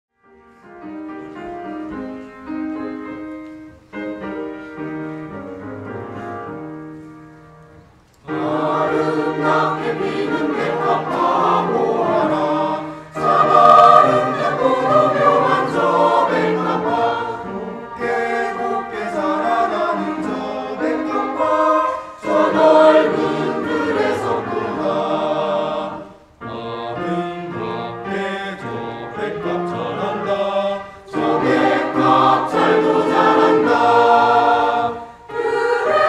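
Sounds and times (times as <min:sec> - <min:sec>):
mixed choir singing: 0:08.2 - 0:36.0.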